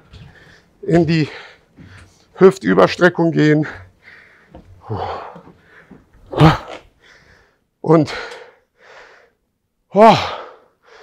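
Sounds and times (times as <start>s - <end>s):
man breathing out heavily: 3.8s - 6.1s
man groaning: 6.3s - 6.9s, 9.9s - 10.6s.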